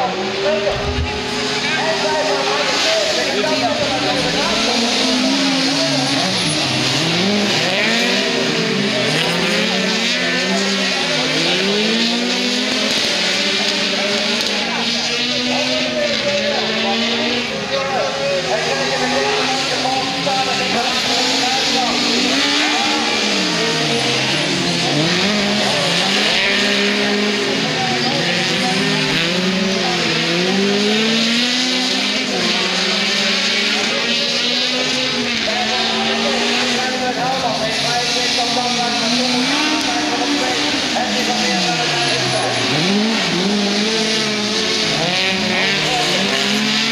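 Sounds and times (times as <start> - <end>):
race car engines revving: 0.0 - 46.9.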